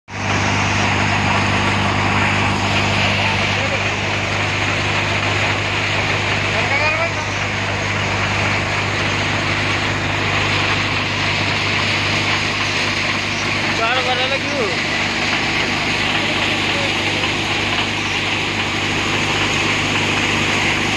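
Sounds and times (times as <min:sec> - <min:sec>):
thresher machine running: 0:00.1 - 0:20.9.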